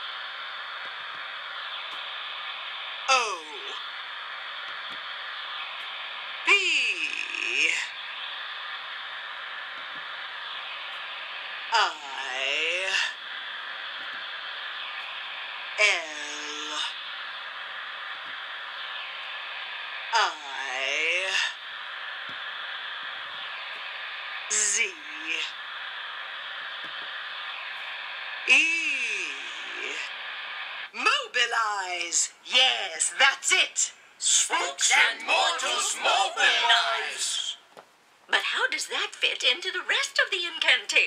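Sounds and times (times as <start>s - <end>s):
steady hiss: 0.0s - 41.0s
eerie ghostly voice call: 15.8s - 17.0s.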